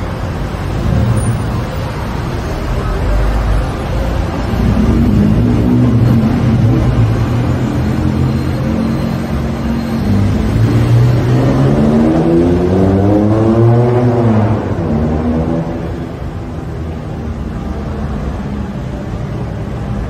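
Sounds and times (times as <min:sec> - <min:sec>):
vehicle engine running: 0:00.0 - 0:13.7
engine accelerating: 0:02.9 - 0:16.2.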